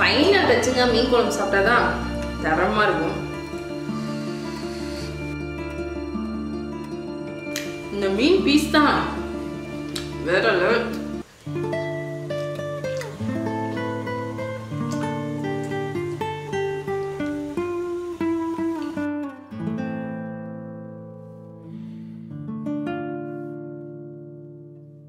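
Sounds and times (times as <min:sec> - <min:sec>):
acoustic guitar picking melody: 0:00.0 - 0:25.0.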